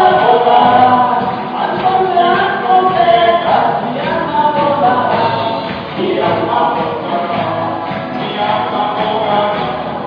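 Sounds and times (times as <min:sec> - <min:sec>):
acoustic guitar: 0:00.0 - 0:10.0
drums: 0:00.0 - 0:10.0
voices singing together: 0:00.0 - 0:10.0.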